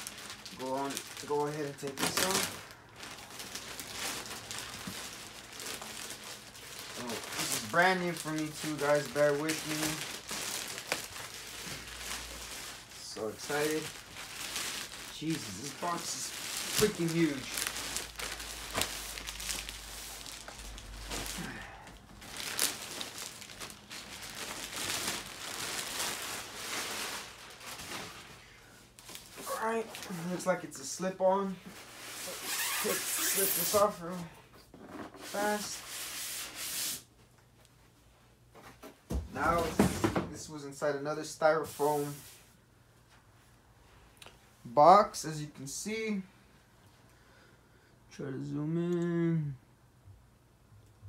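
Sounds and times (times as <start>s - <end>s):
plastic wrap crinkling: 0.0s - 34.2s
plastic wrap snapping: 13.5s - 21.5s.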